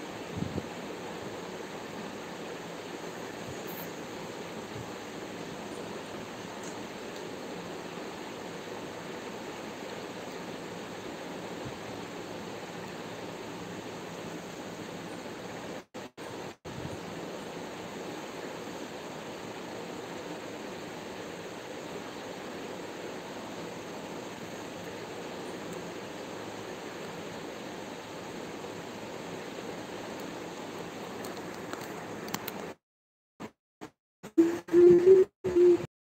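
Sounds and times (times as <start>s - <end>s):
steady background hiss: 0.0s - 32.8s.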